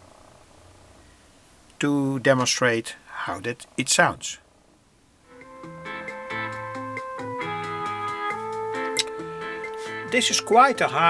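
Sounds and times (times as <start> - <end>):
music through loudspeaker: 5.3 - 11.0.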